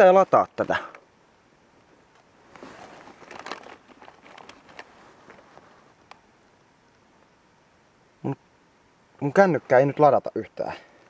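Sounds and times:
jacket fabric brushing: 0:02.4 - 0:06.0
microphone handling noise: 0:02.4 - 0:06.0.

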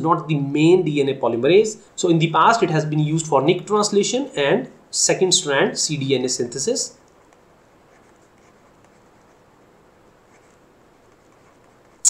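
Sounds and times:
stylus scratching on pen tablet: 0:07.2 - 0:09.5, 0:10.1 - 0:12.0.

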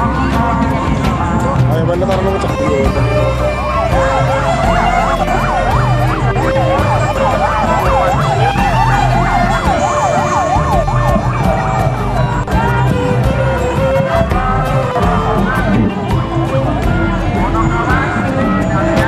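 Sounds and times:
music: 0:00.0 - 0:19.0
low pulse: 0:02.4 - 0:19.0
siren yelping: 0:02.8 - 0:19.0.

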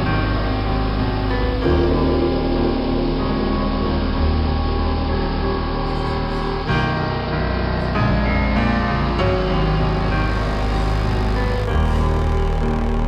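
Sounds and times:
piano and keyboard chords: 0:00.0 - 0:13.0.

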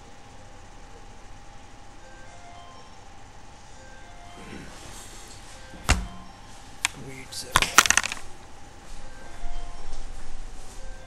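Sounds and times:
clatter of sharp clicks: 0:07.6 - 0:08.3.

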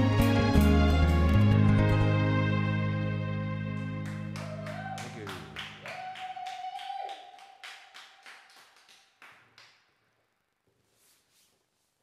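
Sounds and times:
people clapping: 0:03.8 - 0:10.0
held cheer or whistle: 0:04.4 - 0:07.8.

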